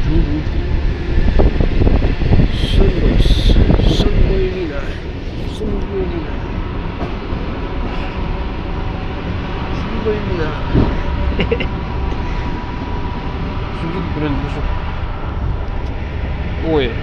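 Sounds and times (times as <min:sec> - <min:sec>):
train rumble inside carriage: 0:00.0 - 0:17.0.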